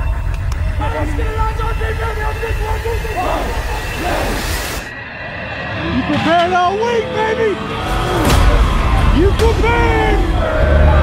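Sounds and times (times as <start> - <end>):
steady low rumble: 0.0 - 11.0
people shouting: 5.7 - 11.0.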